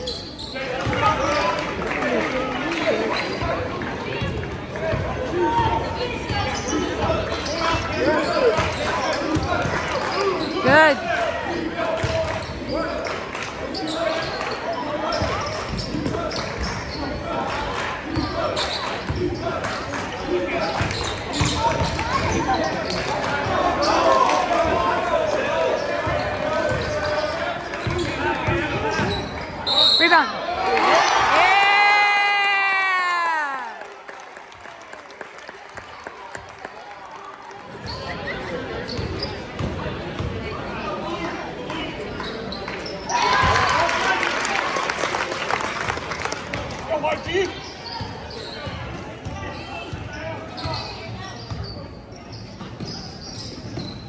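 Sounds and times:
voices and shouts echoing: 0.0 - 34.8, 35.7 - 54.0.

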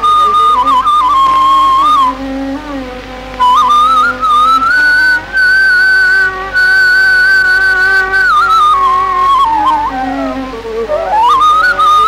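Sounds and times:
bamboo flute melody: 0.0 - 12.0
low accompanying tone: 0.0 - 12.0.

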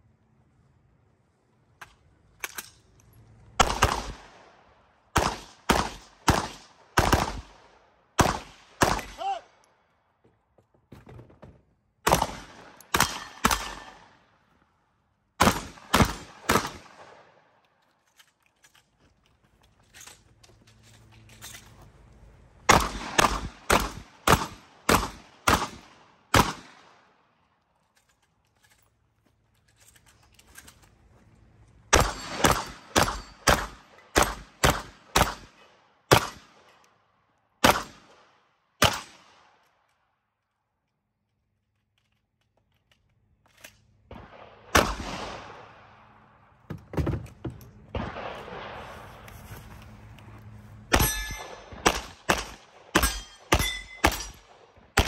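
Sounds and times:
quick single gunshots: 36.1 - 36.5, 37.6 - 38.1, 38.8 - 39.3.

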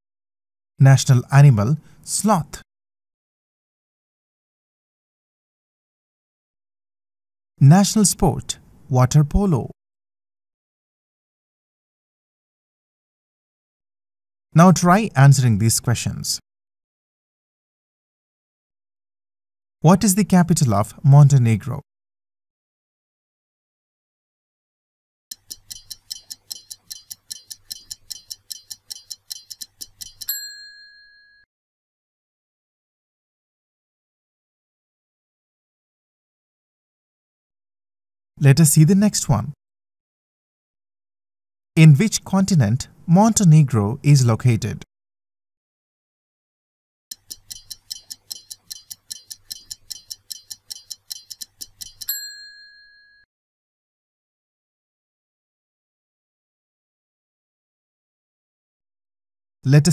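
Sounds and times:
stopwatch ticking: 25.3 - 30.6, 47.1 - 52.3
bright ding: 30.3 - 31.4, 52.1 - 53.2.

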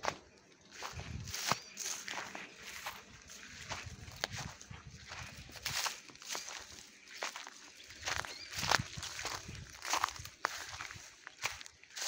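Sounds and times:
footsteps on gritty ground: 0.0 - 12.0.

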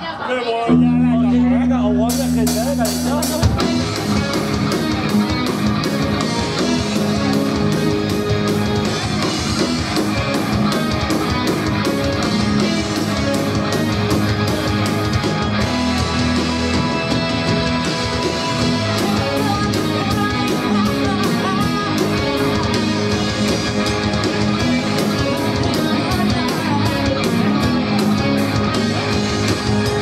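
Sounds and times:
live rock band playing: 0.0 - 30.0
fast drum beat: 2.1 - 30.0.

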